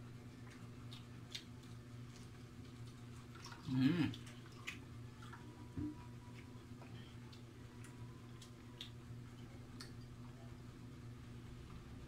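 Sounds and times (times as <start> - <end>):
steady low hum: 0.0 - 12.0
person chewing clicks: 0.3 - 5.5, 6.3 - 10.2.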